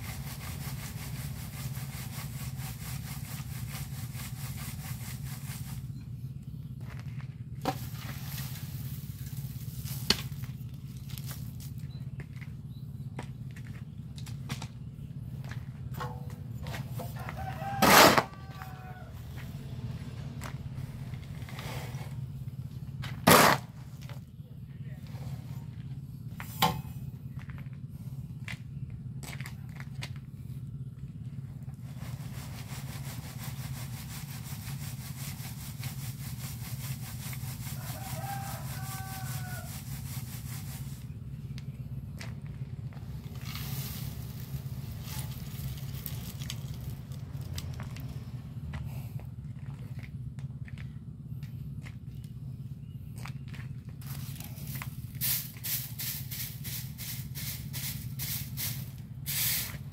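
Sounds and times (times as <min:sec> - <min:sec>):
cement rasping on wire sieve: 0:00.0 - 0:12.4, 0:15.4 - 0:19.4, 0:23.0 - 0:24.1, 0:31.7 - 0:41.3, 0:42.2 - 0:47.5
steady low hum: 0:00.0 - 0:59.9
rooster crowing: 0:17.0 - 0:19.5, 0:37.8 - 0:39.8.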